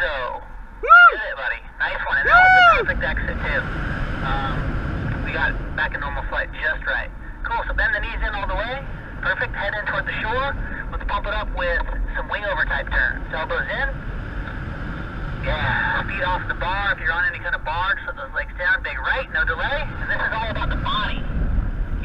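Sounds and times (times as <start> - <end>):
indistinct talking: 0.0 - 14.7
rising and falling cries: 0.8 - 1.3, 2.2 - 3.0
wind on microphone: 2.2 - 6.4, 19.3 - 22.0.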